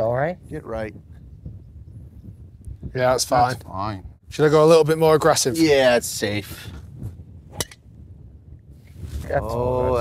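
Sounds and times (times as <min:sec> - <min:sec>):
faint low wind rumble: 0:00.0 - 0:10.0
golf club striking ball: 0:07.5 - 0:07.9.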